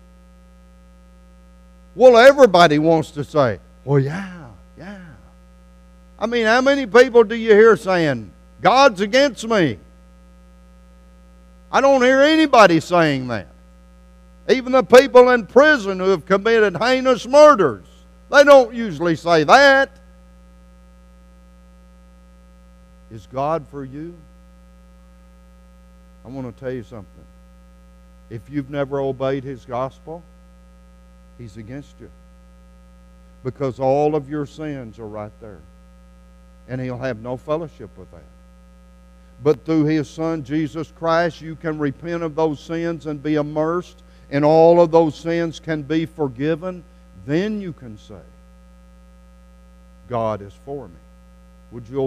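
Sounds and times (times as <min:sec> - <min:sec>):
electrical mains hum: 0:00.0 - 0:52.0
man speaking: 0:02.0 - 0:05.3, 0:06.2 - 0:09.8, 0:11.7 - 0:13.5, 0:14.5 - 0:20.0, 0:23.1 - 0:24.3, 0:26.3 - 0:27.3, 0:28.3 - 0:30.3, 0:31.4 - 0:32.2, 0:33.4 - 0:35.6, 0:36.7 - 0:38.3, 0:39.4 - 0:48.3, 0:50.1 - 0:51.0, 0:51.7 - 0:52.0
spoken word: 0:03.9 - 0:05.3.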